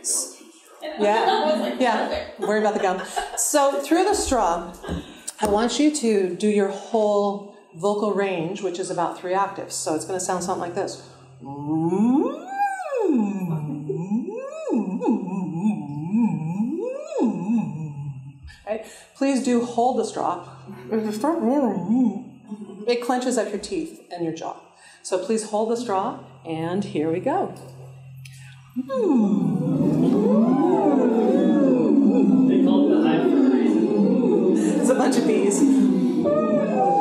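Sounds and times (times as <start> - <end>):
people humming through straws: 9.2 - 18.6, 19.5 - 22.8, 25.6 - 37.0
woman phonating through a straw: 25.8 - 36.2.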